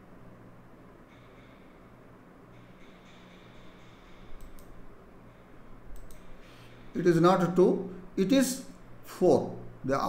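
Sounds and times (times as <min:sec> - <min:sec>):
computer mouse clicks: 0:03.9 - 0:04.8, 0:05.9 - 0:06.3.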